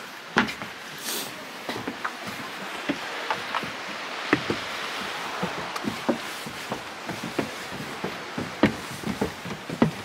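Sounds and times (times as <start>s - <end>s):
outdoor hiss: 0.0s - 10.0s
footsteps on wooden stairs: 0.3s - 10.0s.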